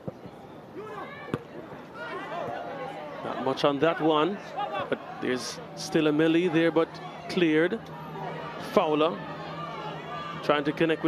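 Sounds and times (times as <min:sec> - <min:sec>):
people shouting: 0:02.0 - 0:03.2, 0:04.4 - 0:05.3, 0:06.3 - 0:11.0.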